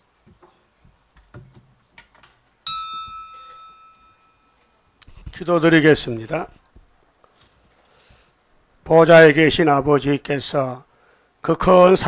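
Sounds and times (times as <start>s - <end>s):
faint knocks and rustles: 0.2s - 5.4s
bright chime note: 2.7s - 4.6s.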